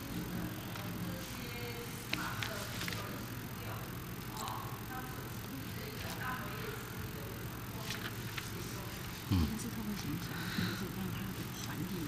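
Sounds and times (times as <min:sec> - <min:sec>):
faint indistinct voices: 0:00.0 - 0:12.0
low steady hum: 0:00.0 - 0:12.0.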